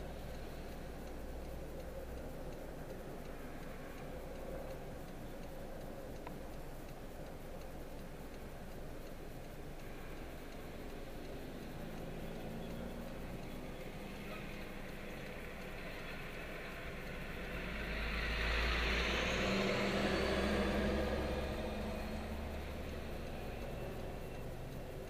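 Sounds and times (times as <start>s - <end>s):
car engine idling: 0.0s - 25.0s
truck passing by: 9.9s - 25.0s.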